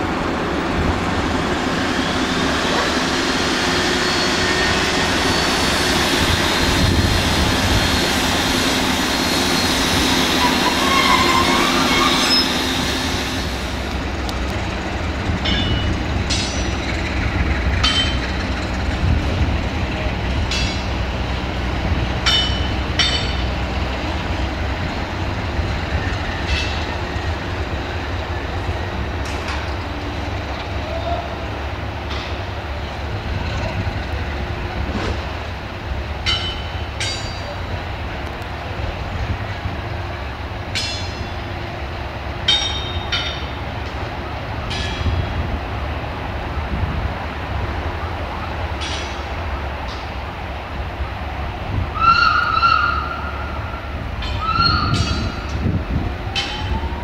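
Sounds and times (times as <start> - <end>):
diesel locomotive engine rumbling: 0.0 - 57.0.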